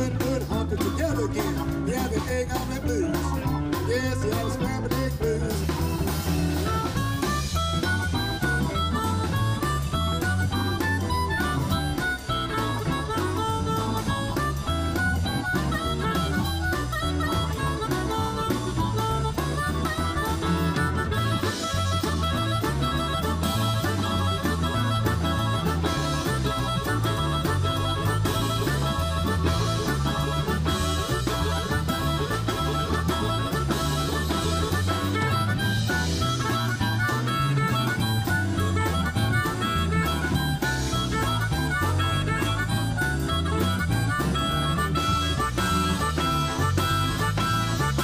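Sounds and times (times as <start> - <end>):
bass guitar: 0.0 - 48.0
blues harmonica solo: 0.0 - 48.0
drum kit: 0.0 - 48.0
electric guitar: 0.0 - 48.0
keyboard: 0.0 - 48.0.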